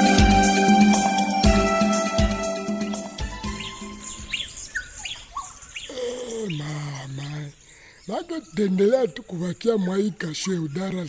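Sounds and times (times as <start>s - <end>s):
birds chirping: 0.9s - 11.0s.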